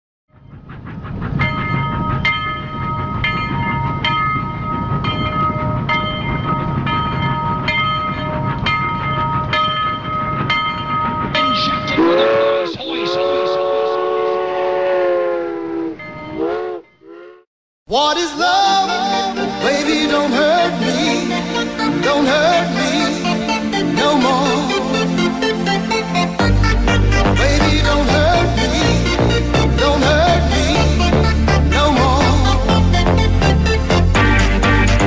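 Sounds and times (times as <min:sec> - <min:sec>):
wheels clickety-clack on rail joints: 0:00.3 - 0:12.6
train rumble and whine: 0:00.3 - 0:17.4, 0:18.0 - 0:35.0
train horn: 0:11.9 - 0:17.4.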